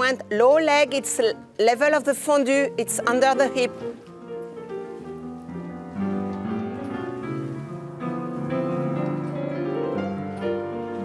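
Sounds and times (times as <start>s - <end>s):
slow piano chords: 0.0s - 11.0s.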